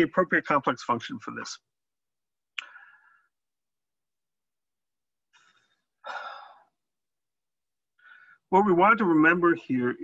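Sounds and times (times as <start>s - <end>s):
man sighing: 6.0s - 6.8s.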